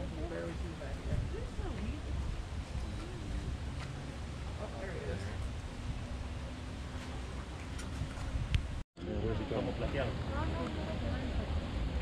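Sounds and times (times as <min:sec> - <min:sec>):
people talking: 0:00.0 - 0:03.8, 0:04.5 - 0:05.4, 0:09.0 - 0:12.0
steady low rumble: 0:00.0 - 0:12.0.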